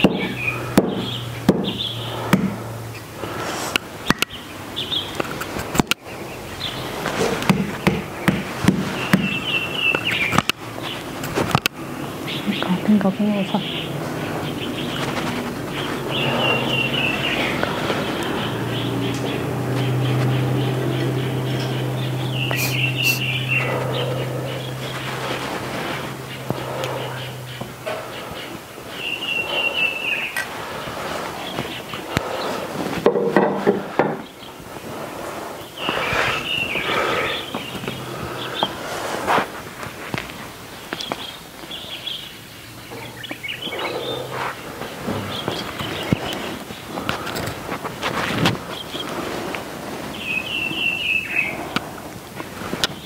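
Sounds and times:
scattered clicks and knocks: 7.0s - 11.8s
high wavering chirps: 11.8s - 32.5s
high whistled bird call: 15.8s - 19.3s, 21.4s - 24.8s.

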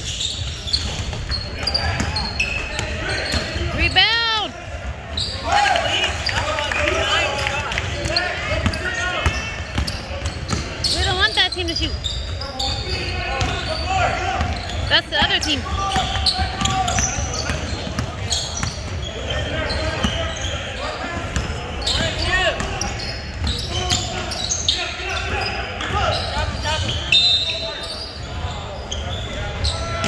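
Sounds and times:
sneakers squeaking on hardwood: 0.0s - 4.2s, 8.0s - 30.0s
players' voices echoing: 0.6s - 30.0s
basketball bouncing: 8.6s - 11.3s, 14.4s - 19.0s.

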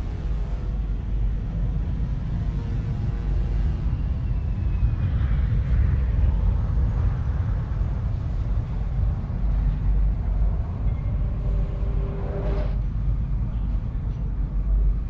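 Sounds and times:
deep engine-like rumble: 0.0s - 15.0s.

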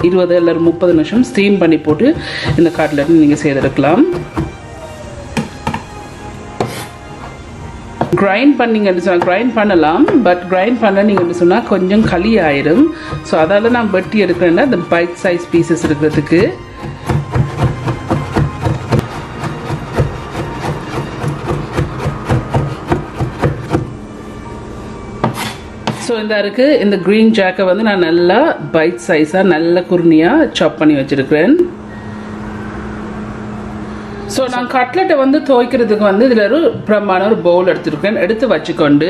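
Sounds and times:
knife chopping on wooden board: 15.8s - 23.9s.

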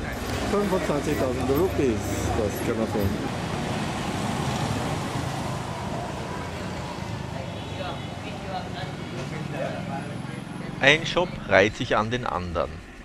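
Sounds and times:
people talking: 0.0s - 3.4s, 5.9s - 12.9s
traffic noise: 0.0s - 13.0s.

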